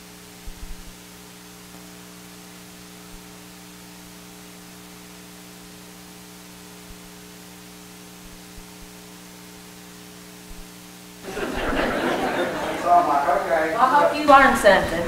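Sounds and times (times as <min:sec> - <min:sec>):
constant hiss: 0:00.0 - 0:15.0
electrical mains hum: 0:00.0 - 0:15.0.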